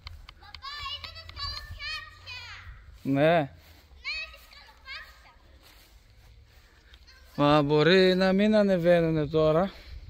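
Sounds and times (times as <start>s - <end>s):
child's high-pitched calls: 0.4s - 3.0s, 3.8s - 5.7s.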